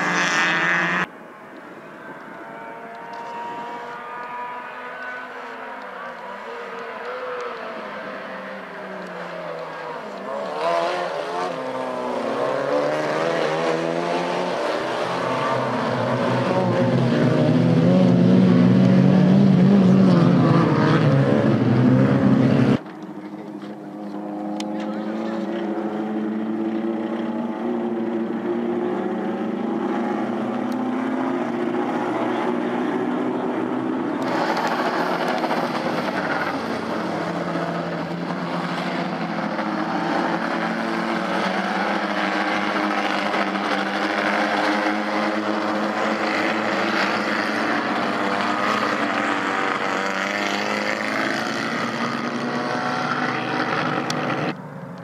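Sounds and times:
race car engines accelerating: 0.0 - 55.0.

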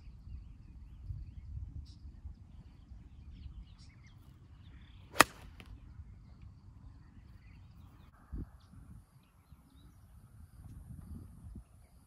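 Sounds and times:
club striking golf ball: 5.1 - 5.7
golf club swish: 5.1 - 5.7.

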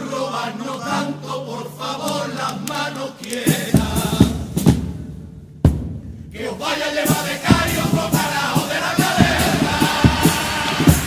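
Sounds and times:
male chorus singing: 0.0 - 4.6, 6.4 - 11.0
loud drum strokes: 3.8 - 11.0.

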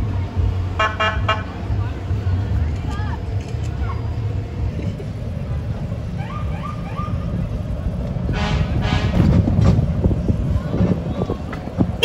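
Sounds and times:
pickup trucks rumbling: 0.0 - 12.0.

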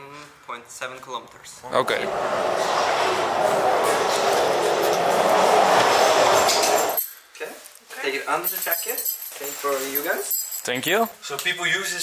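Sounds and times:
loud rolling rumble: 1.6 - 7.1.

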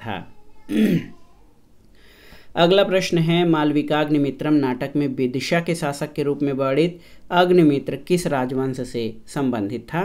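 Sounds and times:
man speaking: 0.0 - 0.4, 2.6 - 10.0
man clearing his throat: 0.7 - 1.1.

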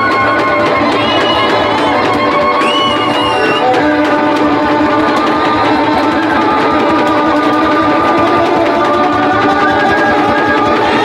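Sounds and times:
fast rhythmic pulse: 0.0 - 11.0
lyre and fiddle playing: 0.0 - 11.0.

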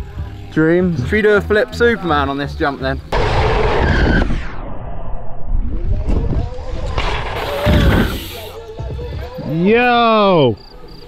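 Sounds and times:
wind rumbling on microphone: 3.2 - 9.3
bike tyres rolling over dirt: 5.8 - 9.7.

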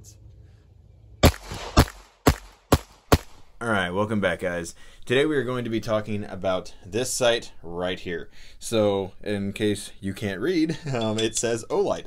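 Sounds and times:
handgun shots: 1.2 - 3.4.

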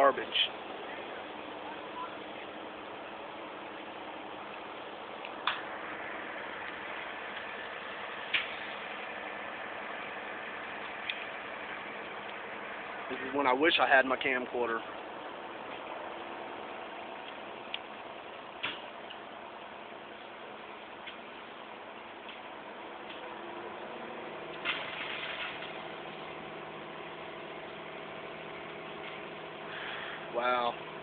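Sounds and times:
low hum: 0.0 - 31.0
vehicle engines idling: 0.0 - 31.0.

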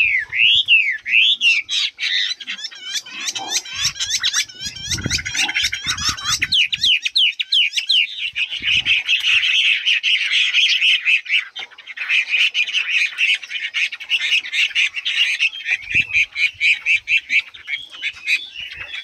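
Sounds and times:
bird singing whistled notes: 0.0 - 19.0.

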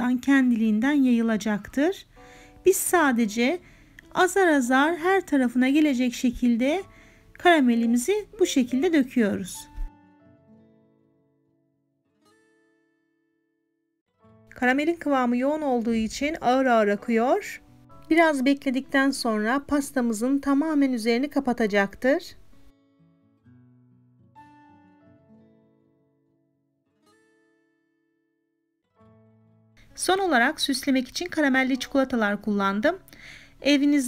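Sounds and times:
faint background music: 0.0 - 11.2, 14.3 - 22.8, 29.1 - 34.0.

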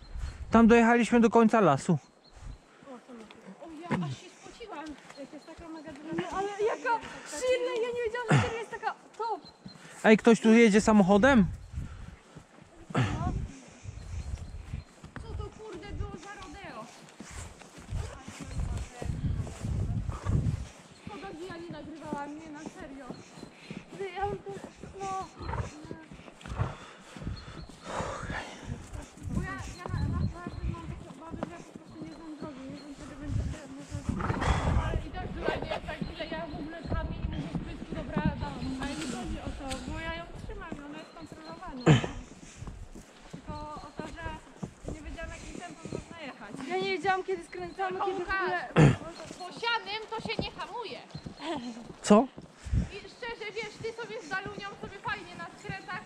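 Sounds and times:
horse hooves thudding on sand: 2.4 - 9.8, 10.9 - 56.0
people talking: 2.9 - 9.4, 15.2 - 17.0, 17.9 - 23.2, 23.9 - 26.2, 27.9 - 42.2, 43.5 - 51.8, 52.9 - 56.0.

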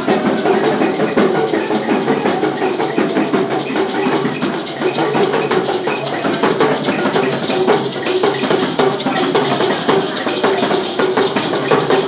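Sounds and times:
drums: 0.0 - 12.0
gourd rattles: 3.9 - 12.0.

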